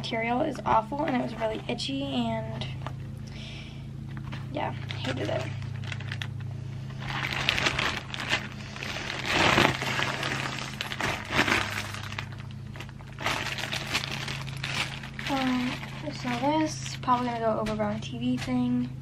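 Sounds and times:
steady low hum: 0.0 - 19.0
plastic bag crinkling: 4.2 - 18.7.

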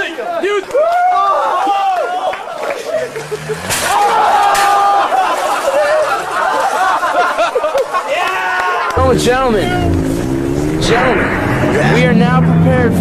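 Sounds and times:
people talking and calling out: 1.5 - 13.0.

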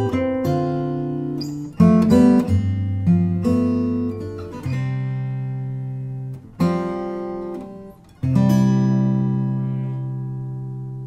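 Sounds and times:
acoustic guitar chords strummed: 0.0 - 11.0.

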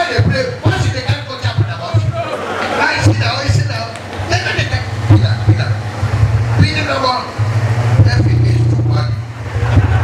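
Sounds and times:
man talking over pa system: 0.0 - 5.8, 6.6 - 7.4, 8.0 - 9.2
low hum: 4.2 - 10.0.

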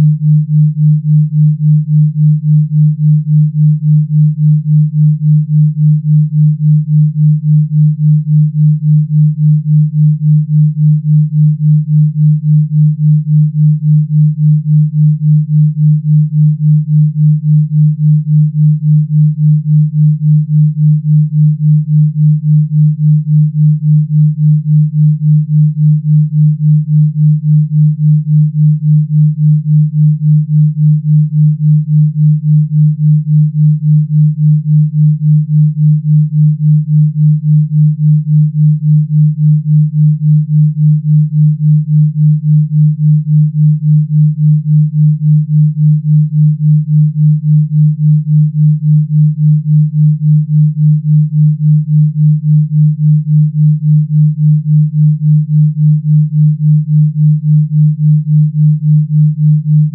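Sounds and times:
pulsing low sine tone: 0.0 - 59.9.

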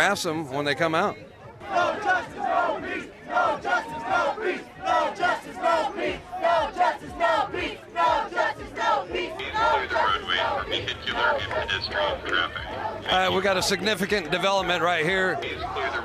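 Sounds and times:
crowd chanting: 1.5 - 16.0.

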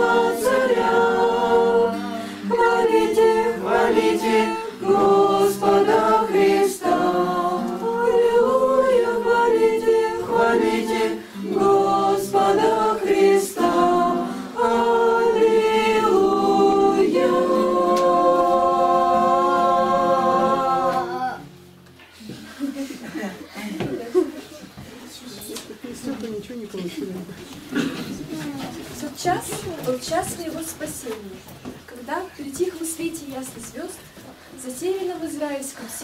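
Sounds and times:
choir singing a cappella: 0.0 - 21.6.

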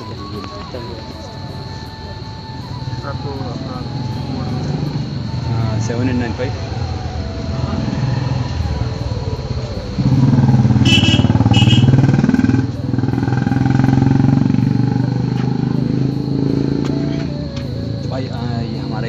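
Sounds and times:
motorcycle engine running: 0.0 - 19.0.

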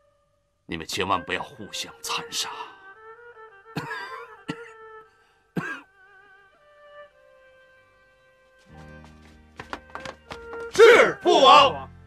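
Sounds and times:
soft violin music: 0.0 - 12.0
old man coughing: 3.8 - 4.8, 5.6 - 5.9.

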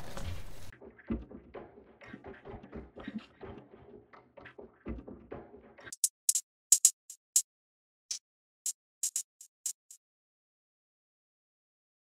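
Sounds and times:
crisp high percussion hits: 8.7 - 10.0.

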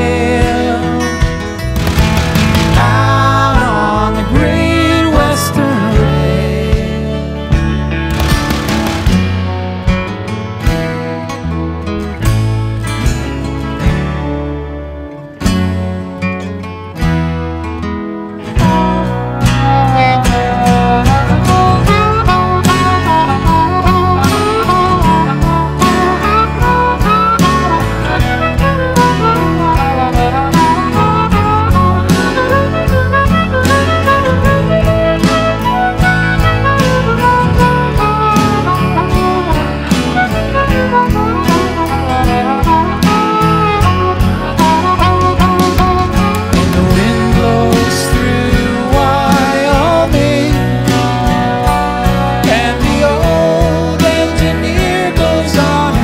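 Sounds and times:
acoustic band playing: 0.0 - 56.0
ringing guitar chords: 0.0 - 56.0.

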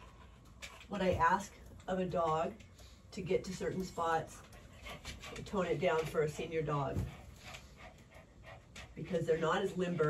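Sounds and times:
dog panting: 3.6 - 10.0.

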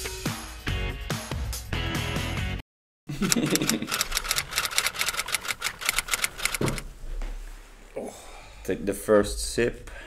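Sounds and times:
man laughing: 3.1 - 4.0
rapid evenly spaced clicks: 3.2 - 6.8.

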